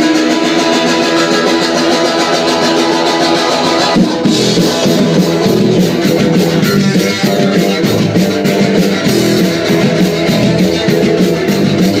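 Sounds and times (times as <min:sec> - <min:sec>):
guitar strummed loudly: 0:00.0 - 0:12.0.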